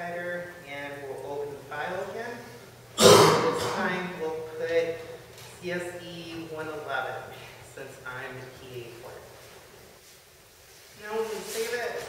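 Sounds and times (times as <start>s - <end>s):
person clearing throat: 3.0s - 3.9s.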